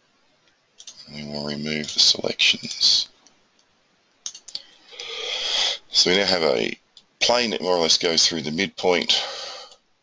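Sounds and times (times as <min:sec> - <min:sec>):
computer mouse clicks: 0:00.8 - 0:01.0, 0:03.2 - 0:04.6.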